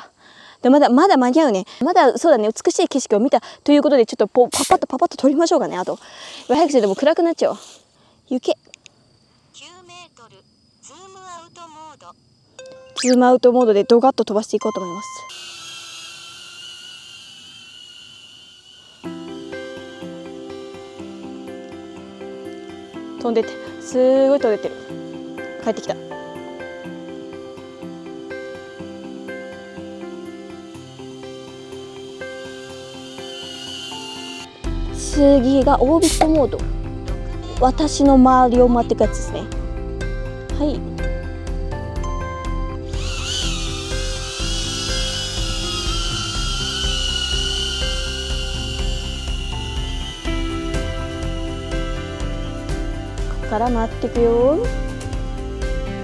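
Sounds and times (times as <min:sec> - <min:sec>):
drone propellers whining: 0:15.2 - 0:37.4, 0:42.4 - 0:56.0
background music: 0:19.1 - 0:56.0.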